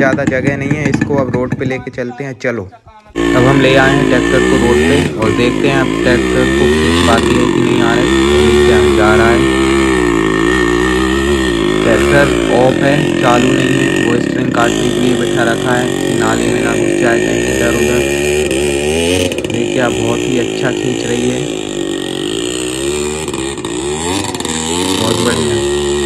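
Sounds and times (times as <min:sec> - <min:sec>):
two-stroke engine straining: 0:00.0 - 0:26.0.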